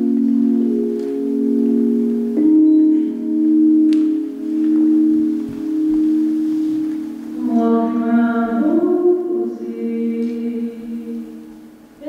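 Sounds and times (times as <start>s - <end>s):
slow keyboard and electric guitar music: 0.0s - 10.1s.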